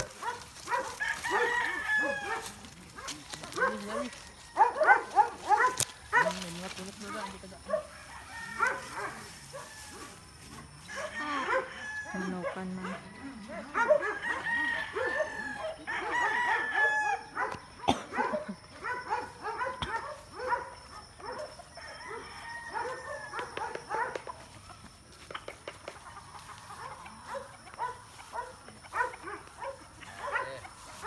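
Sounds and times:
roosters crowing: 0.0s - 31.0s.

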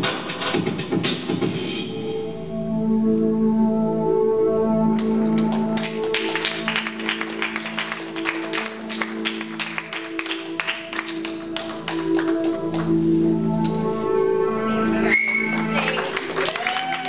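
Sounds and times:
sustained synthesizer chords: 1.8s - 15.0s.

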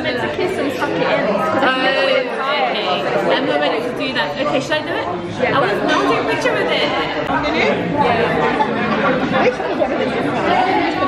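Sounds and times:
hubbub of overlapping conversation: 0.0s - 11.0s.

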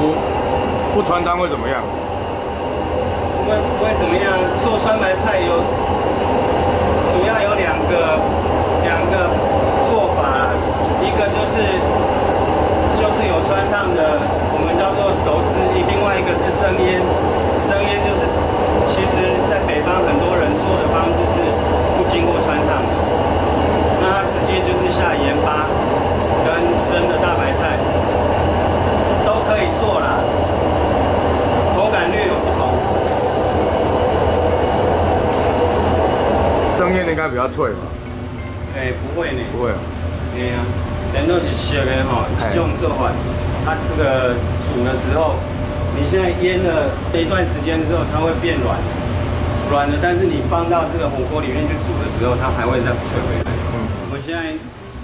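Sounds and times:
gas range roaring: 0.0s - 55.0s.

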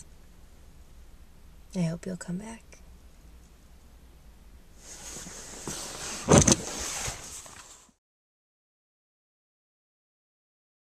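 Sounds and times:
sharp bumps on microphone: 4.8s - 7.9s
microphone handling rustle: 4.8s - 8.0s.

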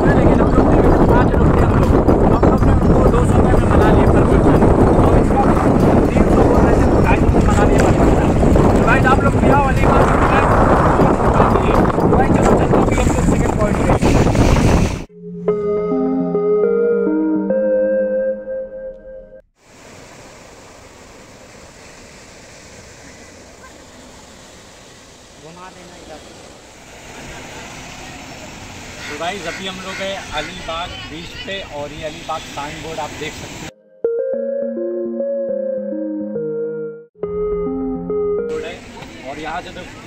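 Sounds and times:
wind buffeting microphone: 0.0s - 15.1s
music: 15.1s - 19.4s, 33.8s - 38.8s
sea surf rushing: 19.6s - 33.7s.

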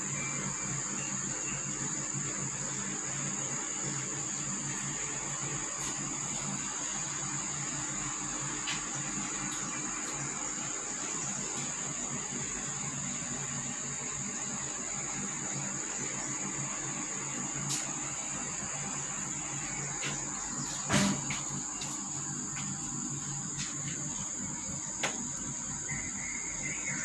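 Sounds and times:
high-pitched insect drone: 0.0s - 27.0s.

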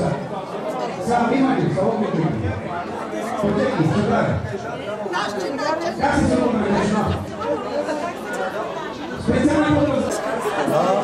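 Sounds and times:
overlapping chatter of people: 0.0s - 11.0s.

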